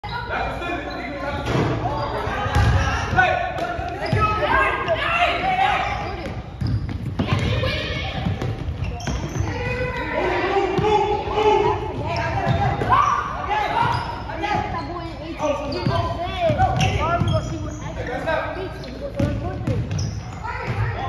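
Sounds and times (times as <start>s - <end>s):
basketballs bouncing on wood floor: 5.8s - 10.0s, 15.7s - 17.7s, 19.1s - 21.0s
young players calling out: 9.3s - 19.5s.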